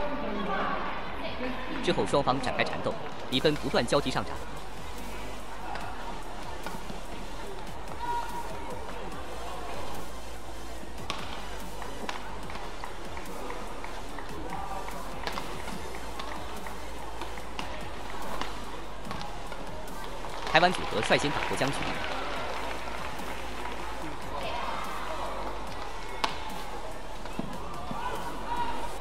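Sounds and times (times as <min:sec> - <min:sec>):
background music: 0:00.0 - 0:29.0
rackets hitting shuttlecock: 0:11.0 - 0:11.4, 0:14.4 - 0:19.3, 0:25.7 - 0:28.3.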